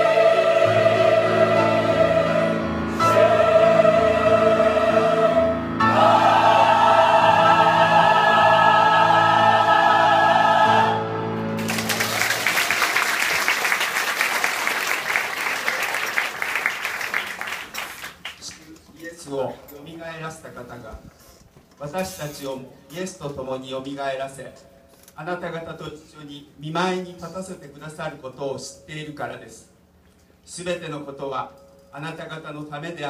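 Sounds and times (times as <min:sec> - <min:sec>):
choir singing a hymn: 0:00.0 - 0:11.7
congregation applauding: 0:11.6 - 0:18.7.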